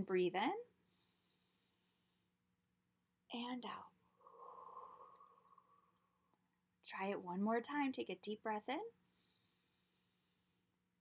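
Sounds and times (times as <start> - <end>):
woman exhaling slowly: 4.2 - 6.2.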